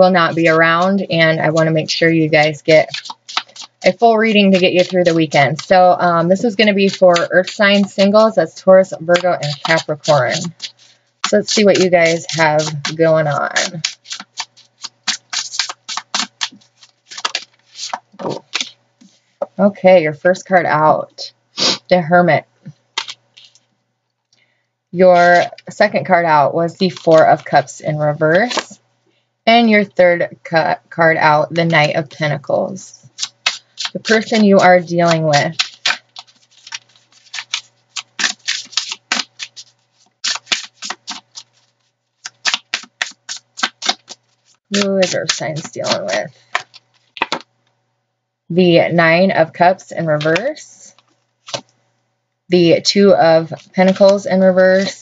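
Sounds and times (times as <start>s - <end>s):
cards being shuffled: 0.0s - 19.2s, 22.7s - 23.7s, 26.8s - 27.7s, 28.3s - 28.8s, 33.0s - 47.5s, 50.2s - 51.8s, 53.4s - 55.0s.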